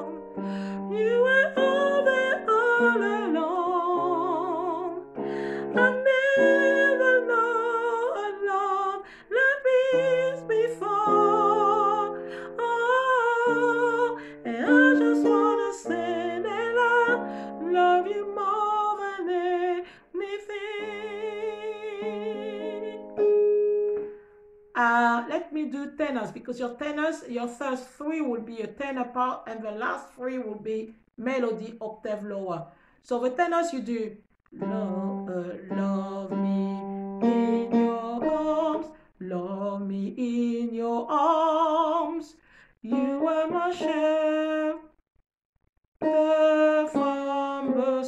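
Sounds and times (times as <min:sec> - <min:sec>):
woman singing with vibrato: 0:00.0 - 0:23.2, 0:24.8 - 0:26.7, 0:33.3 - 0:45.0, 0:46.0 - 0:48.0.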